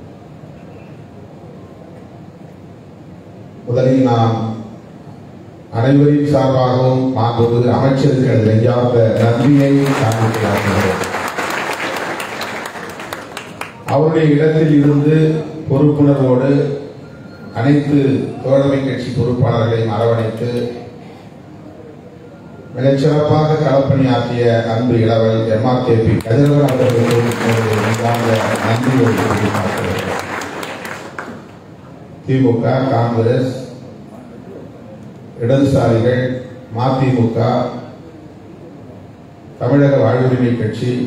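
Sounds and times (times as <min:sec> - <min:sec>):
audience applause: 0:09.2 - 0:13.9, 0:26.2 - 0:31.5.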